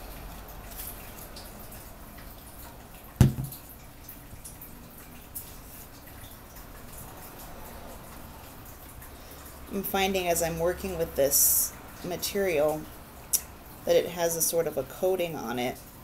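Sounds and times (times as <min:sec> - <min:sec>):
faint taps on paper: 0:03.2 - 0:03.5
plastic bottle knocking on wood: 0:03.2 - 0:03.6.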